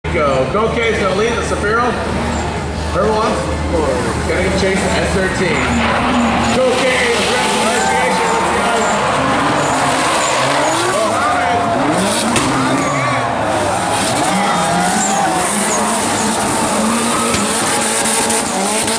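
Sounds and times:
car engines revving: 0.1s - 18.9s
tyres squealing and skidding: 1.0s - 18.9s.

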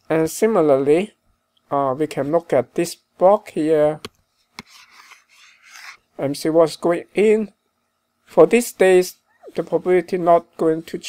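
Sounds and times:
stylus scratching on tablet: 4.4s - 6.1s.

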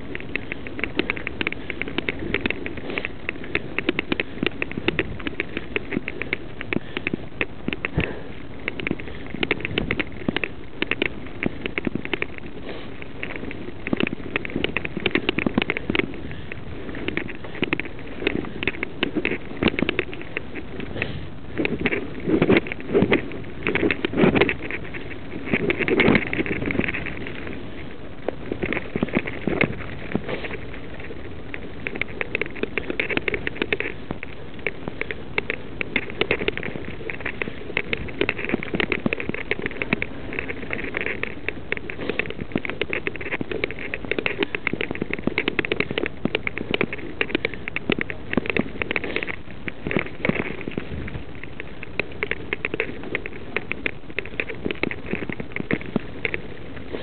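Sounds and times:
bike rattling over bumps: 0.0s - 57.0s
tyres crunching over stones: 0.0s - 57.0s.

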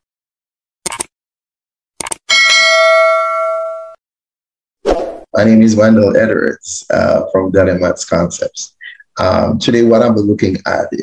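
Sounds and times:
notification bell ding: 2.3s - 4.0s.

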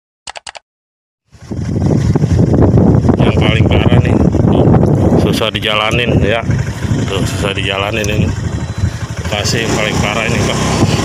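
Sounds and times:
quick clicks: 0.3s - 0.6s
motorcycle engine riding: 1.3s - 11.0s
wind rumble on microphone: 1.3s - 11.0s.

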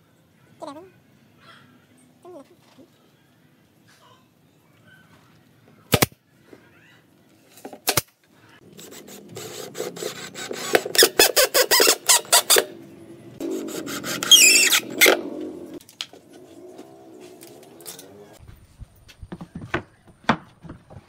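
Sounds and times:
cordless drill driving screws: 9.0s - 12.6s.

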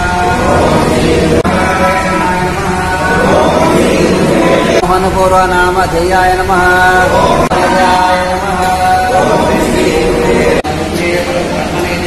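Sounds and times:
devotional chanting voices: 0.0s - 12.0s.

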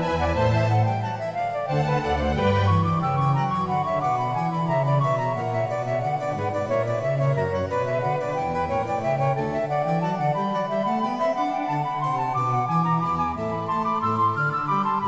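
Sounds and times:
harpsichord music: 0.0s - 15.0s.

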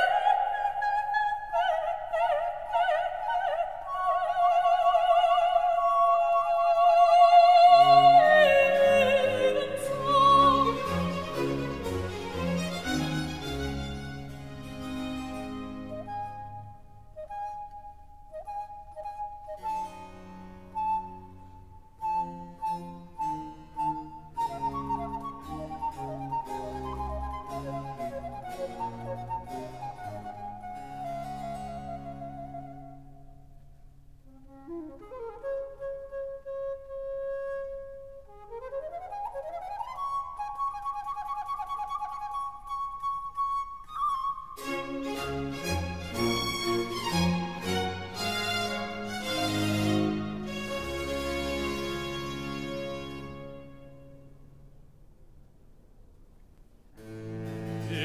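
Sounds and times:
flute melody: 6.8s - 33.6s, 34.3s - 54.3s
low strings: 9.8s - 16.5s, 44.6s - 54.4s, 57.0s - 58.0s.

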